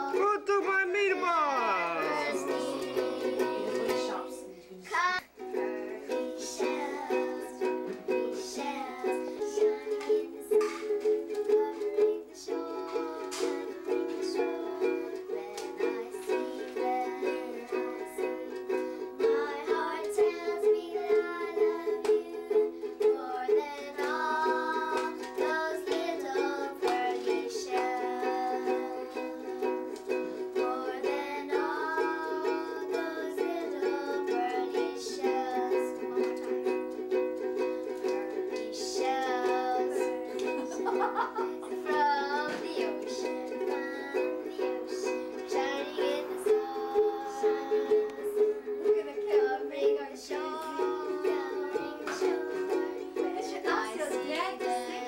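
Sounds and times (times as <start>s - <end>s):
ukulele strumming: 0.0s - 55.0s
girls singing: 1.0s - 55.0s.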